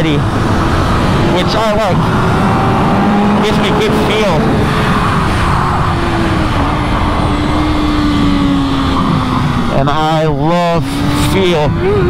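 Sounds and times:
wind noise rushing: 0.0 - 11.8.

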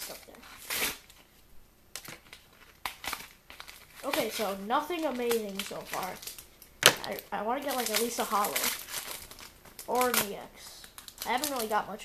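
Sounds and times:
card wrappers rustling and clicking: 2.0 - 12.0.

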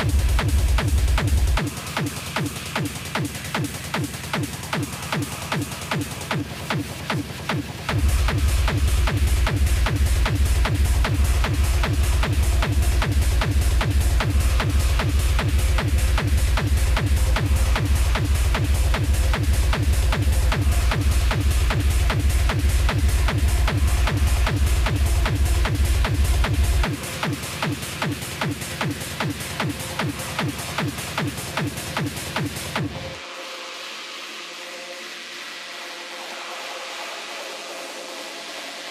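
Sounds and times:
heavy bass kick: 0.0 - 33.1
fast electronic dance music: 0.0 - 38.9.

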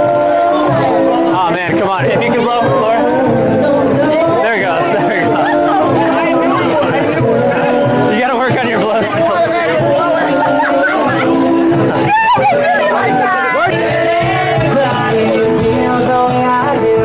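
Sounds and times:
crowd talking and calling out: 0.0 - 17.0
loud party music: 0.0 - 17.0.

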